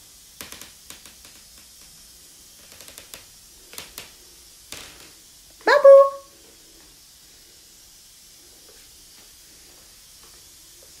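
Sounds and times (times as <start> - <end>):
faint steady hiss: 0.0 - 11.0
short high-pitched voice-like sound: 5.6 - 6.3.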